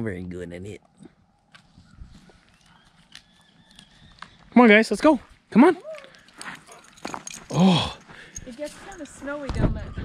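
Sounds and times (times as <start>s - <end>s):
dog gnawing wooden stick: 2.4s - 4.4s.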